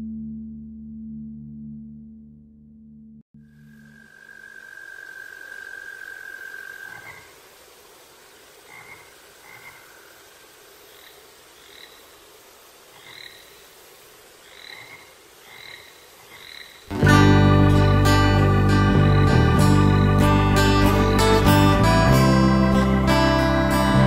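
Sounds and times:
steady high tone: 3.4s - 7.0s
frogs croaking: 3.4s - 16.9s
faint hiss: 4.0s - 16.9s.

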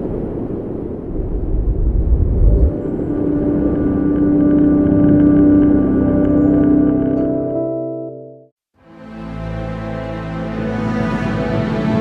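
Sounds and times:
deep rumbling whoosh: 1.0s - 7.1s
sustained electronic chord: 2.5s - 12.0s.

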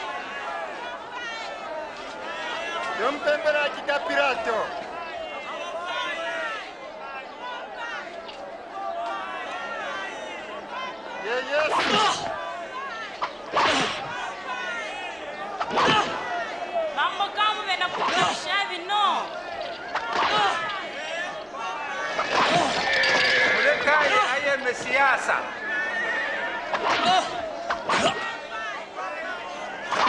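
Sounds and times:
crowd shouting: 0.0s - 30.0s
whip lashing: 11.8s - 12.2s, 13.2s - 14.0s, 15.6s - 16.2s, 18.0s - 18.4s, 20.0s - 20.6s, 22.3s - 22.8s, 26.7s - 28.3s.

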